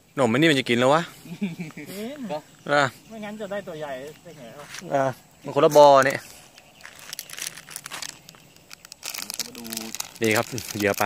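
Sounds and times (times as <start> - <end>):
plastic wrapper crinkling: 6.0 - 11.0.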